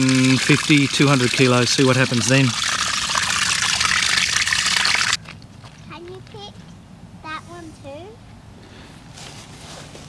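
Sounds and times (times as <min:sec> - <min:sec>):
water gushing onto concrete: 0:00.0 - 0:05.2.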